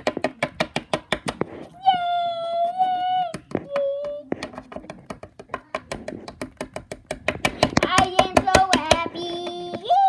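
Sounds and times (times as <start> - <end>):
plastic toys tapping on wooden shelf: 0.0 - 1.5, 3.3 - 9.9.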